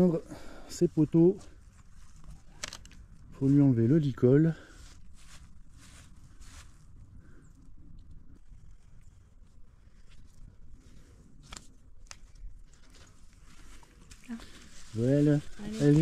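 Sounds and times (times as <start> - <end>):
halter handling sounds: 1.8 - 3.2.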